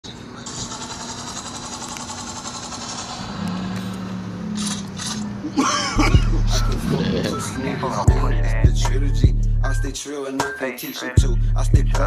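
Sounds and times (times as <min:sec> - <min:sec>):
passing vehicles on road: 0:00.6 - 0:08.2.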